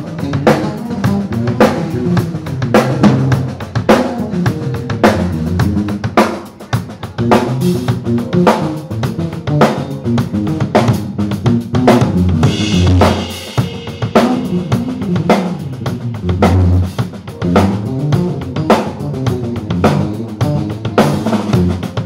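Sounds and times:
drum kit groove: 0.0 - 22.0
electric bass guitar: 0.0 - 22.0.

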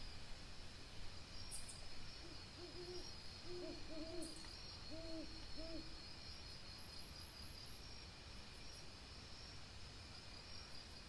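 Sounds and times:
night insects chirring: 0.0 - 11.0
bird hooting at night: 2.2 - 6.0.

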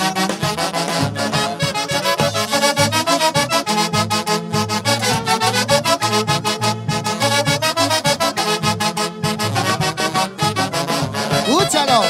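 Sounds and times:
saxophones playing melody: 0.0 - 12.0.

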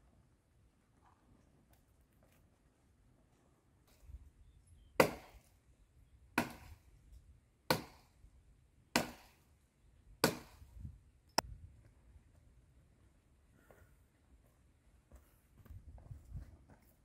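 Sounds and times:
axe chopping wood: 5.0 - 5.4, 6.4 - 6.8, 7.7 - 8.1, 8.9 - 9.4, 10.2 - 10.6.

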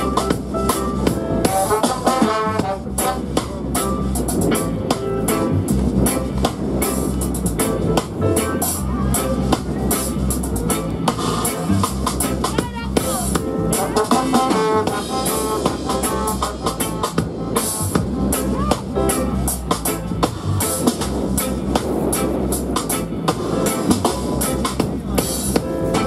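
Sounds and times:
drum kit: 0.0 - 26.0
electric bass: 0.0 - 26.0
guitar: 0.0 - 26.0
keyboard: 0.0 - 26.0
melodic lead line: 0.0 - 26.0.

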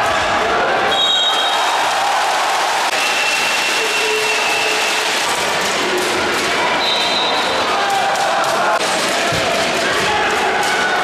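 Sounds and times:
crowd voices and cheering: 0.0 - 11.0.

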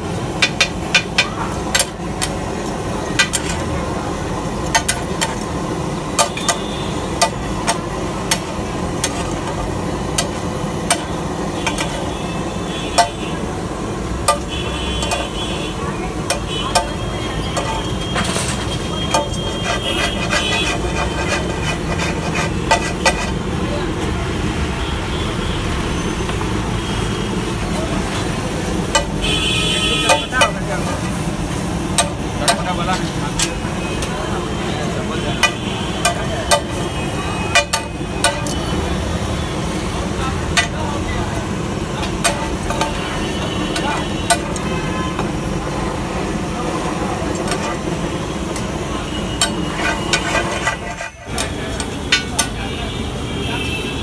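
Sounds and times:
traffic running: 0.0 - 54.0
spatula scraping iron griddle: 0.4 - 23.5, 27.6 - 38.8, 39.6 - 45.4, 46.0 - 52.6
car horns honking: 14.2 - 21.6, 28.7 - 31.2, 33.5 - 39.8, 42.1 - 45.4, 47.2 - 54.0.

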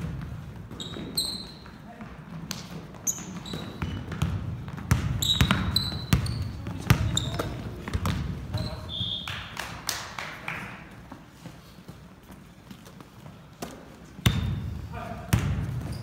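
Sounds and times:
basketball bouncing on wooden floor: 0.0 - 8.7, 15.3 - 16.0
sneakers squeaking on court: 0.0 - 9.5, 11.3 - 16.0
players' voices: 5.6 - 12.4, 13.0 - 16.0.

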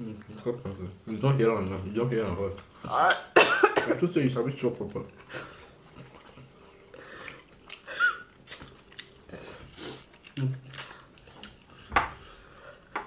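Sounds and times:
chewing and wet mouth sounds: 0.0 - 3.4, 4.0 - 12.9.

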